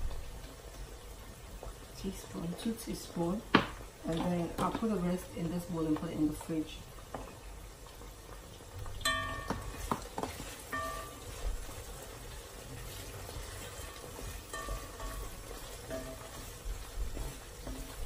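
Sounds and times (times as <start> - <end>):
meat frying in a pot: 0.0 - 18.0
spoon knocking against pot: 9.1 - 10.2
wooden spoon stirring: 9.1 - 18.0.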